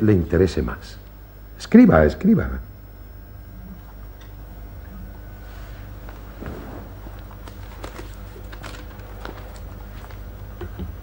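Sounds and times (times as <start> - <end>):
steady low hum: 0.0 - 11.0
footsteps on stage floor: 5.8 - 8.5.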